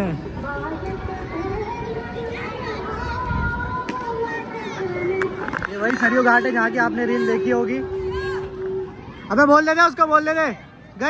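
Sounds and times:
wind rumbling on microphone: 0.0 - 9.4
children's voices and shouts: 0.1 - 11.0.

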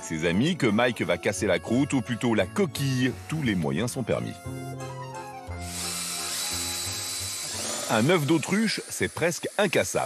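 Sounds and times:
cordless drill grinding into eggshell: 5.6 - 10.0
person speaking: 7.8 - 10.0.

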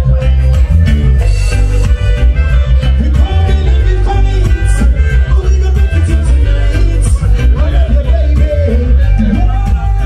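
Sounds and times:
loud music with heavy bass: 0.0 - 10.0.

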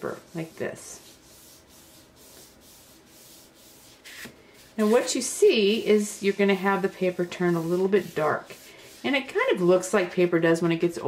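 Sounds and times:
tea bag rubbing on cardstock: 0.0 - 9.6.

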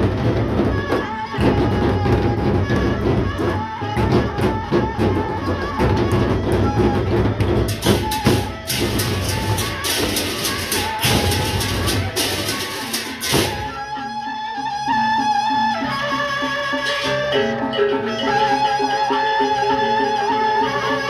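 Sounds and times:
large barrel drums beating: 0.0 - 13.8
hand cymbals clashing: 7.7 - 13.7.

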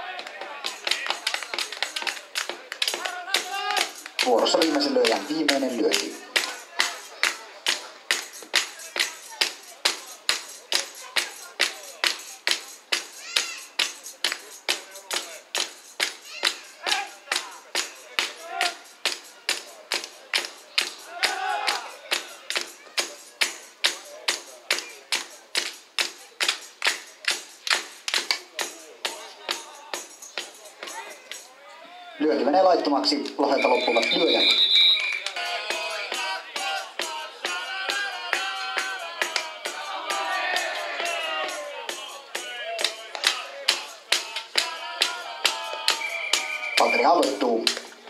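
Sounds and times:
rhythmic clapping in unison: 0.0 - 31.5, 33.2 - 48.0
faint voices: 0.0 - 48.0.

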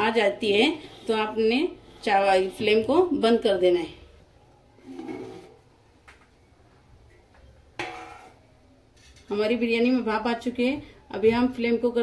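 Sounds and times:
metal lid scraping pot: 4.8 - 5.6, 7.8 - 8.4.

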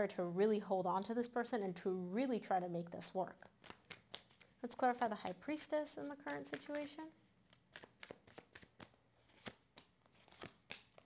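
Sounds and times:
cards being shuffled: 3.5 - 11.0
cards laid on table: 3.6 - 7.1.

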